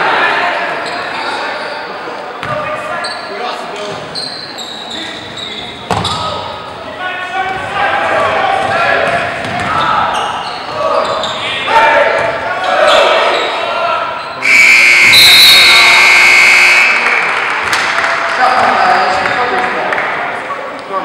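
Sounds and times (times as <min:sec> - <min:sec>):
crowd and player voices: 0:00.0 - 0:21.0.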